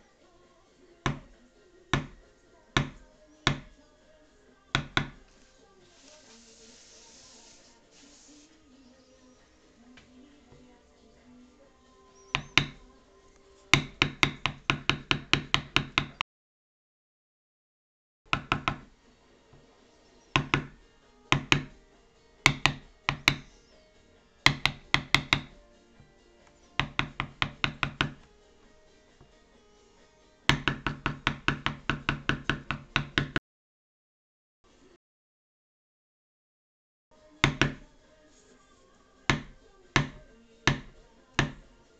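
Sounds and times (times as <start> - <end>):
mallet tapping stamping tool on leather: 1.1 - 1.3, 1.9 - 2.2, 2.8 - 3.8, 4.8 - 5.3, 12.3 - 12.8, 13.7 - 16.2, 20.4 - 21.8, 22.4 - 23.5, 24.4 - 25.6, 26.8 - 28.3, 30.5 - 33.4, 37.4 - 37.8, 39.3 - 41.7
hammer tapping metal stamping tool: 13.8 - 16.2, 22.4 - 23.5, 24.4 - 25.6.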